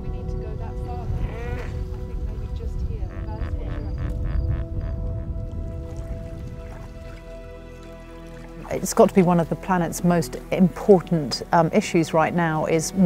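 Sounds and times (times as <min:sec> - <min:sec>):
background music with held tones: 0:00.0 - 0:13.0
hippopotamus calling: 0:01.1 - 0:02.0, 0:02.8 - 0:05.4.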